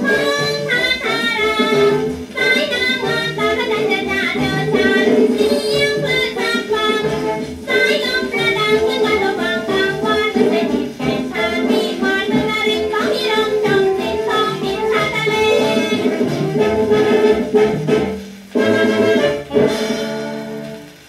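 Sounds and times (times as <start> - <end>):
woman singing: 0.0 - 17.5
small band playing: 0.0 - 21.0.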